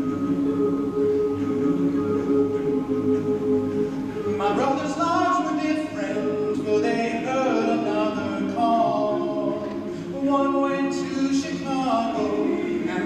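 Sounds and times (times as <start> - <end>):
male choir singing in harmony: 0.0 - 13.0.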